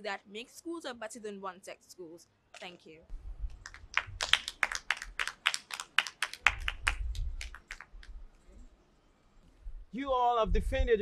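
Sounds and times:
small group clapping: 0:03.5 - 0:08.2.

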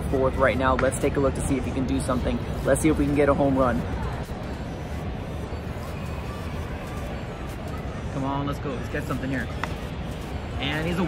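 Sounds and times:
faint public-address music: 0:00.0 - 0:11.0
murmur of crowd chatter: 0:00.0 - 0:11.0.

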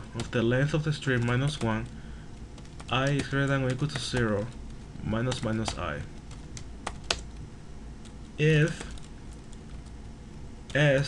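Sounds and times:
keyboard keystrokes: 0:05.2 - 0:07.4.

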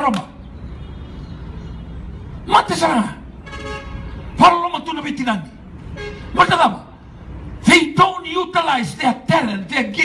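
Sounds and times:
man shouting preaching: 0:00.0 - 0:00.3, 0:02.4 - 0:03.3, 0:04.4 - 0:05.5, 0:06.3 - 0:07.0, 0:07.6 - 0:10.0
vehicle horn: 0:03.4 - 0:04.4, 0:05.9 - 0:06.4.

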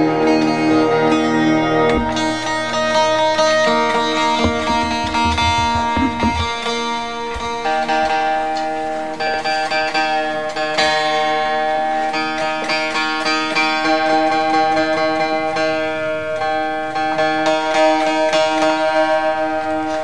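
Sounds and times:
ringing guitar string drone: 0:00.0 - 0:08.6
acoustic guitar fingerstyle melody: 0:00.0 - 0:20.0.

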